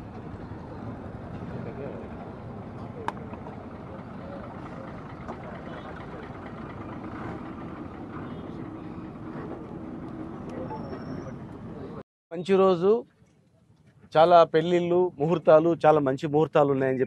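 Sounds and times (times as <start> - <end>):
earthmover engine idling: 0.0 - 12.0
crowd chatter: 2.8 - 7.0.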